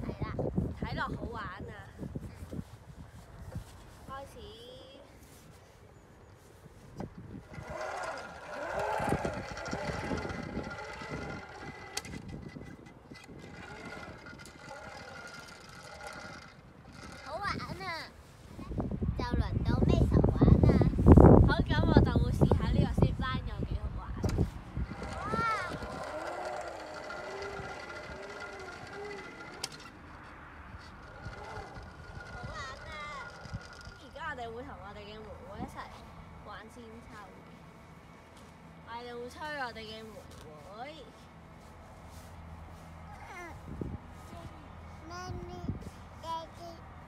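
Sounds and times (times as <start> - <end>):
zip line trolley rolling on cable: 7.0 - 18.4, 23.6 - 36.1.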